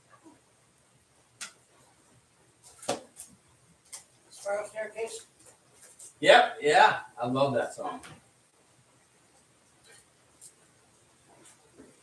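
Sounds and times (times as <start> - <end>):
man talking: 6.2 - 8.1.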